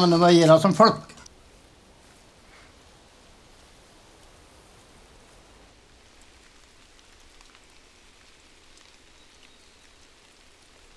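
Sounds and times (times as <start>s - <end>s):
light rain: 0.0s - 10.9s
small raindrop ticks: 1.1s - 10.9s.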